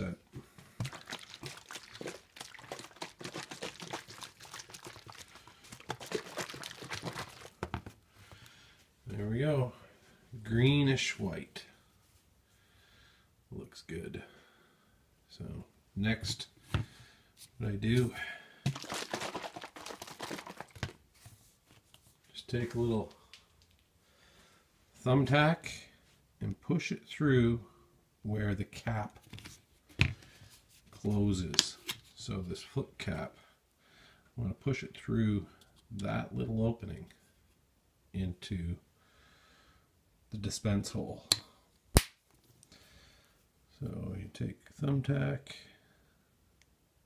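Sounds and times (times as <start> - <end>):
liquid sloshing in shaken bottle: 0.7 - 7.9, 18.7 - 21.0.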